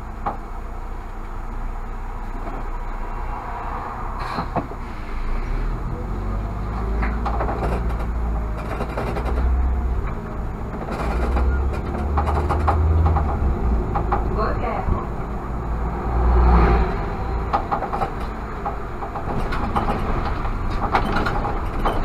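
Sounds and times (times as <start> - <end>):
bus engine rumble: 0.0 - 22.0
bodywork rattles and clicks: 6.8 - 14.6, 17.4 - 22.0.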